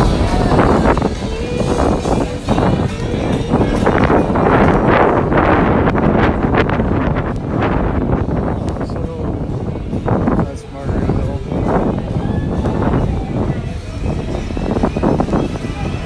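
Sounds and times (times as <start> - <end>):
faint background music: 0.0 - 16.0
faint voices: 0.0 - 16.0
wind buffeting microphone: 0.0 - 16.0.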